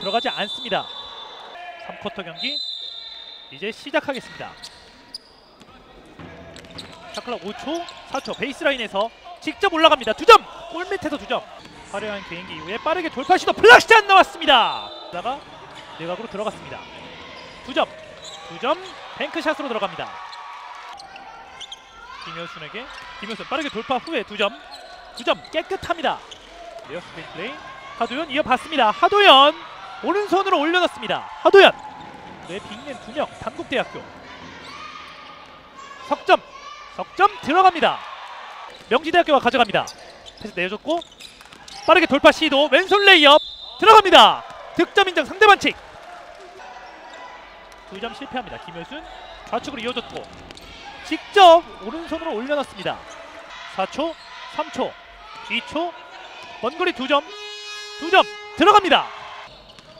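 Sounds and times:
gym hall murmur: 0:00.0 - 0:59.9
gymnasium background noise: 0:00.0 - 0:59.9.

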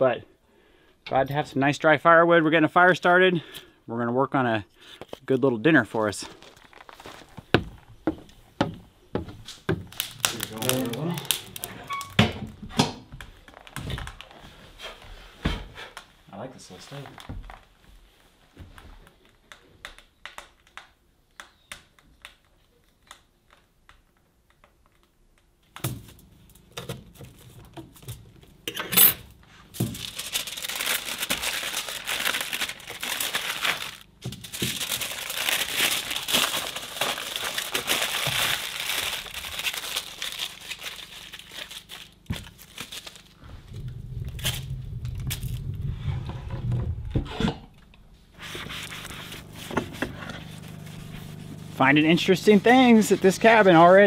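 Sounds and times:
aluminum foil crinkling: 0:06.2 - 0:07.4, 0:09.8 - 0:12.2, 0:29.7 - 0:43.6, 0:44.2 - 0:45.7, 0:48.4 - 0:54.0
wood stove fire crackling: 0:09.4 - 0:18.5, 0:43.1 - 0:46.2, 0:47.9 - 0:54.0
low rumble: 0:43.4 - 0:51.8.

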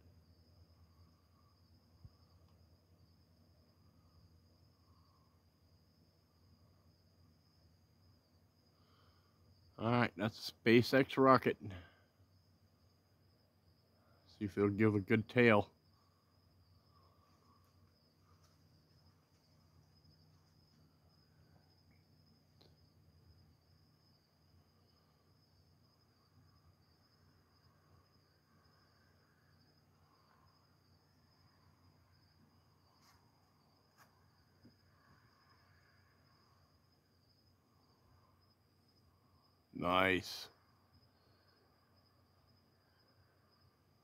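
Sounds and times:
crickets trilling: 0:00.0 - 0:44.0.

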